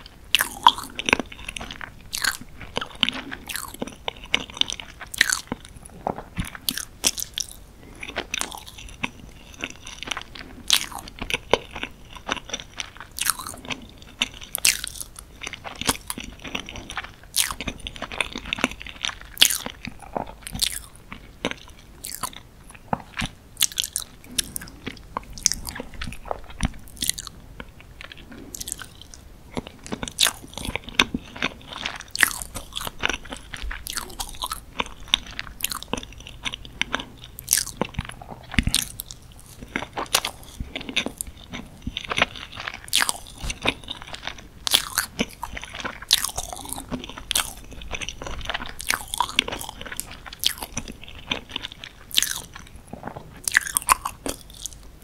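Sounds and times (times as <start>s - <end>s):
chewing mouth clicks: 6.4s - 27.4s, 28.1s - 54.8s.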